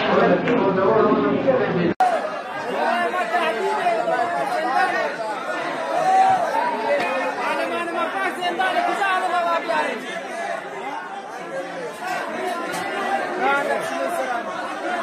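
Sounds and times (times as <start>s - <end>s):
crowd of men talking: 0.0s - 15.0s.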